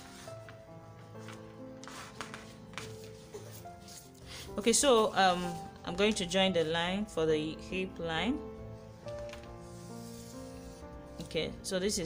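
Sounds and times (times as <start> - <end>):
soft background music: 0.0 - 12.0
marker drawn across paper: 1.8 - 4.2, 9.4 - 10.8.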